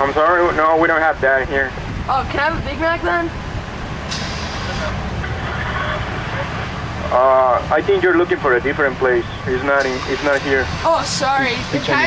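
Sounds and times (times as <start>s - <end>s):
car engine idling: 0.0s - 12.0s
brief hiss: 4.1s - 4.9s.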